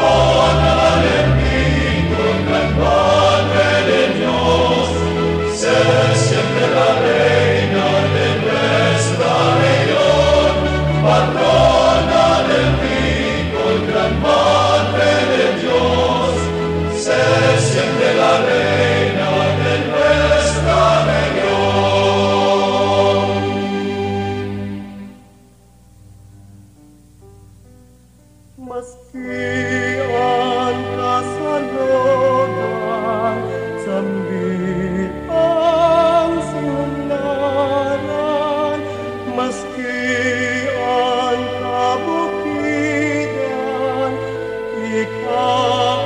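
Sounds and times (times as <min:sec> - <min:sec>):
choir singing a hymn: 0:00.0 - 0:25.2, 0:28.6 - 0:46.0.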